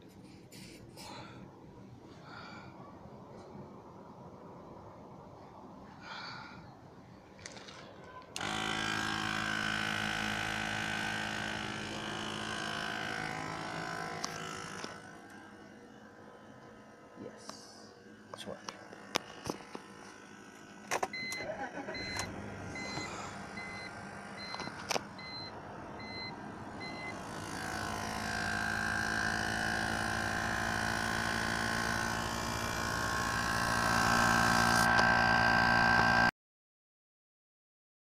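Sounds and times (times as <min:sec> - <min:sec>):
car engine hum: 0:08.4 - 0:17.0, 0:18.8 - 0:36.3
electronic warning chime beeping: 0:21.2 - 0:27.2.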